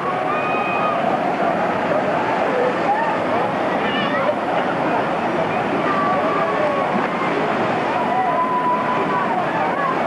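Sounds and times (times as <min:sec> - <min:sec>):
rushing churning water: 0:00.0 - 0:10.0.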